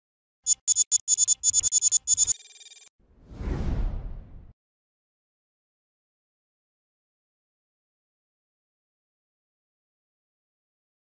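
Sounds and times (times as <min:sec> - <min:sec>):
low whoosh: 0:03.1 - 0:04.6.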